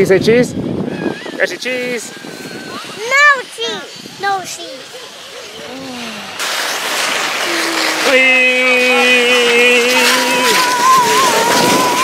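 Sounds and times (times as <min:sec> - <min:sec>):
snow tubes sliding rushing noise: 0:00.0 - 0:12.0
air buffeting microphone: 0:05.5 - 0:12.0.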